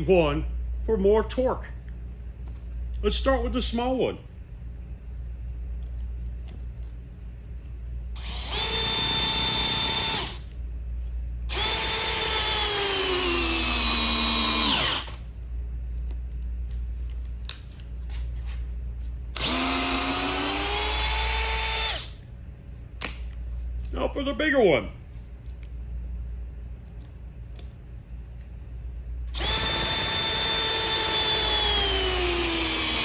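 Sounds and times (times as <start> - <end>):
cordless drill driving screw into wood: 8.2 - 10.4, 11.5 - 15.2, 19.4 - 22.1, 29.4 - 33.0.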